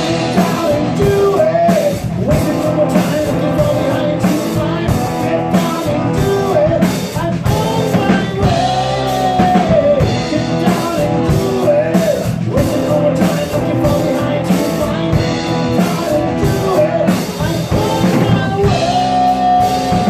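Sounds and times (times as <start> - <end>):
bass guitar: 0.0 - 20.0
drum kit steady beat: 0.0 - 20.0
electric guitar: 0.0 - 20.0
man singing lead: 0.0 - 20.0.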